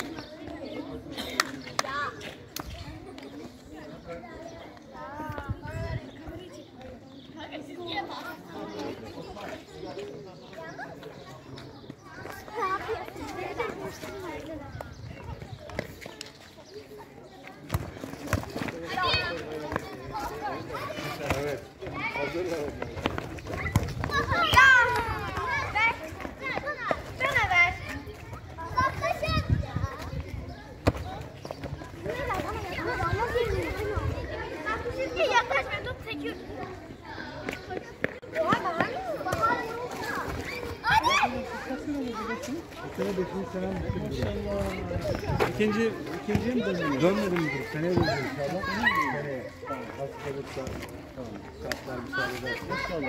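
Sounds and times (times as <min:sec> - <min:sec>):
children shouting and shrieking: 0:00.0 - 0:50.8, 0:51.8 - 0:53.0.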